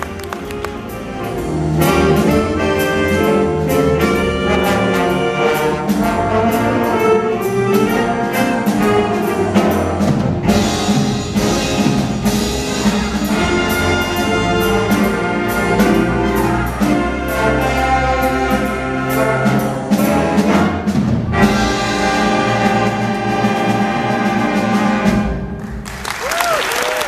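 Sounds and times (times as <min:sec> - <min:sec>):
jazz big band playing: 0:00.0 - 0:27.0.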